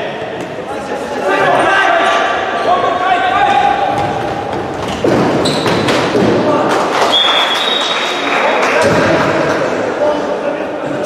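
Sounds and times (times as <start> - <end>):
players shouting: 1.0 - 4.5
high steady whistle: 7.1 - 8.0.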